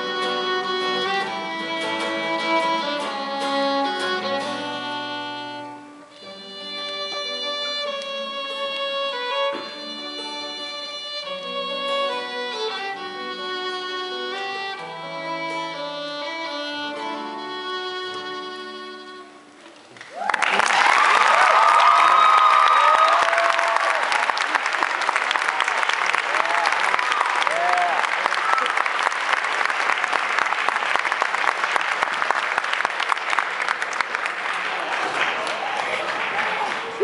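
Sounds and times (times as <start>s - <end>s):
audience applauding: 19.9s - 37.0s
cheering voices: 20.0s - 37.0s.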